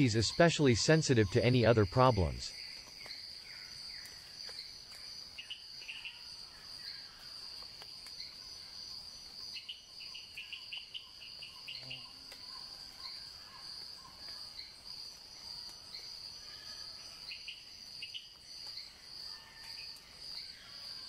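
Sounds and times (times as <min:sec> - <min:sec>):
insects trilling: 0:00.0 - 0:21.0.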